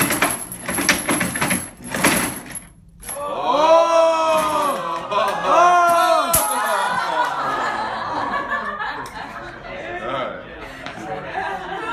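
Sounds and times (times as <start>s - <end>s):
wooden shake table rattling: 0.0s - 2.8s
cry of voices: 3.2s - 7.8s.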